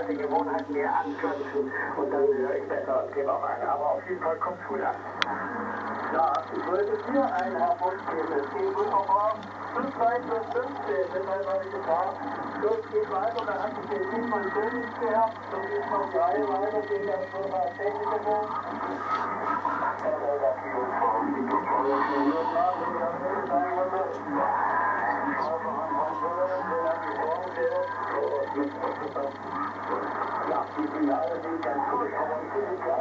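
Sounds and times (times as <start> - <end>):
man talking over radio: 0.0 - 5.1, 6.0 - 33.0
steady low hum: 0.0 - 33.0.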